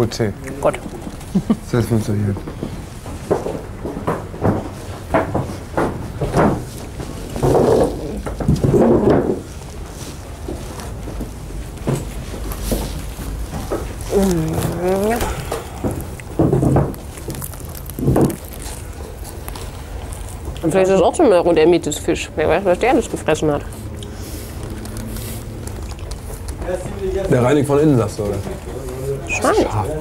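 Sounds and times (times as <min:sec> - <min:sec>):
indistinct talking: 0:26.6 - 0:30.0.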